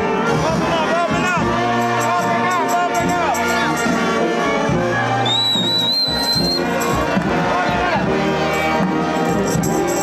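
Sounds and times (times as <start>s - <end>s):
brass band playing: 0.0s - 10.0s
shrill whistle: 5.2s - 6.8s.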